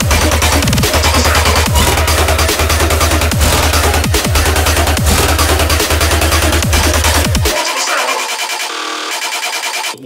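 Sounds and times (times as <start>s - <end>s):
dense synth texture: 0.0s - 10.0s.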